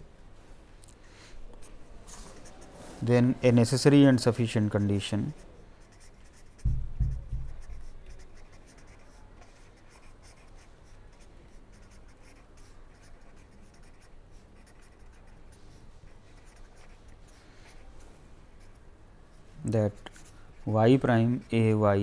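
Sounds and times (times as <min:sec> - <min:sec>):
pen scratching on paper: 0:04.6 - 0:18.0
low thump: 0:06.6 - 0:07.6.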